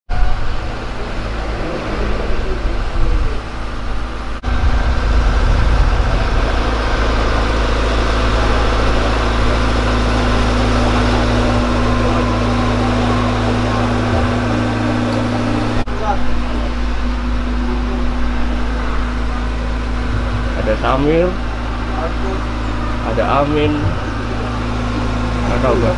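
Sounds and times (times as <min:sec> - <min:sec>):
engine droning: 0:00.1 - 0:25.9.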